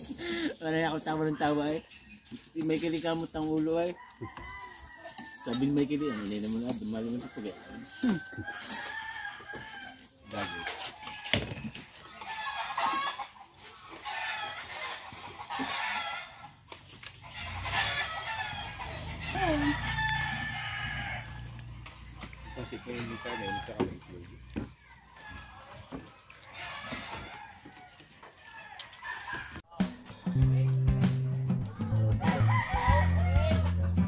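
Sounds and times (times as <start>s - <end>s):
rooster crowing: 3.9s - 6.1s, 7.1s - 11.5s, 17.3s - 24.0s, 24.6s - 26.0s, 26.6s - 29.6s, 31.8s - 33.9s
hens clucking: 10.3s - 29.7s.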